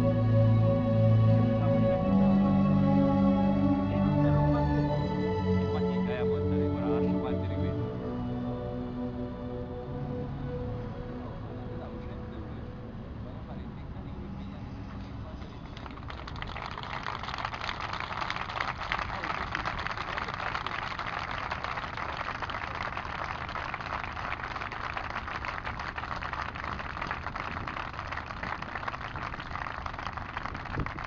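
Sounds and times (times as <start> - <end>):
motorway traffic rumble: 0.0 - 31.0
large crowd applauding: 15.6 - 31.0.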